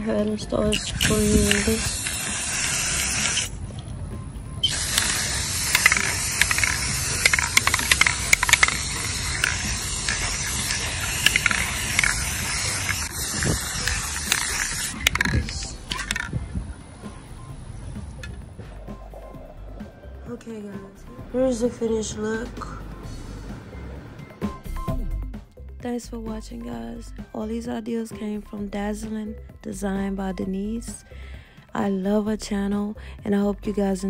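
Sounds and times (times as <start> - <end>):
spray paint can hissing: 0.6 - 3.6, 4.6 - 16.4.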